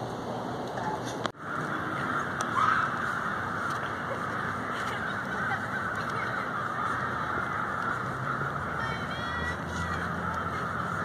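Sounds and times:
crows cawing: 1.4s - 11.0s.

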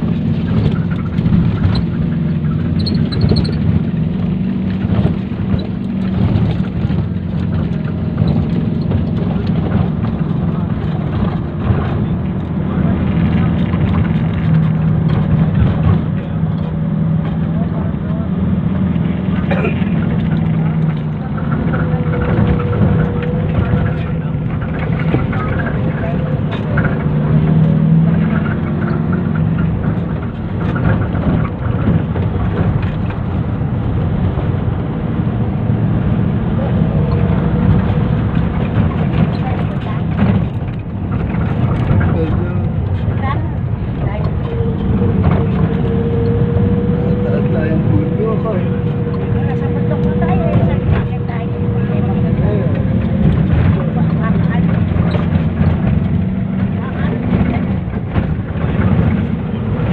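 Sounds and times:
road noise: 0.0s - 59.9s
vehicle engine drone: 0.0s - 59.9s.

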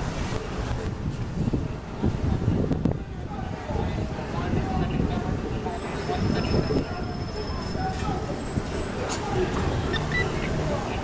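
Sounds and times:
steady low street rumble: 0.0s - 11.0s
indistinct voices talking: 2.2s - 11.0s.

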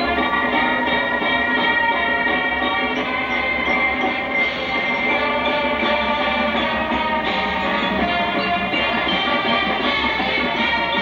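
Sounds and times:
marching band sustained chords: 0.0s - 11.0s.

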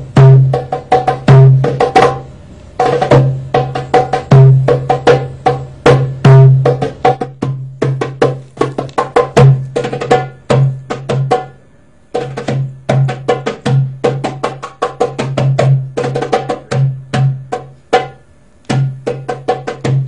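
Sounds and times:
hand drum fast rhythm: 0.0s - 20.0s.

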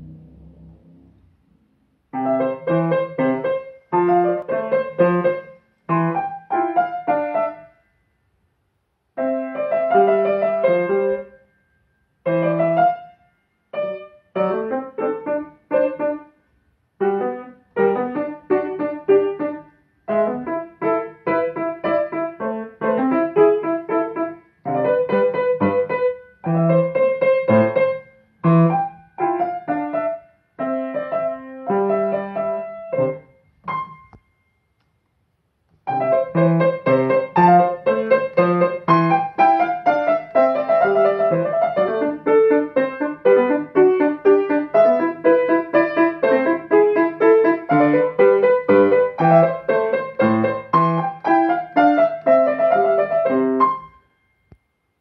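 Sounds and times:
grand piano playing: 0.0s - 1.5s, 2.2s - 7.7s, 35.9s - 54.0s.

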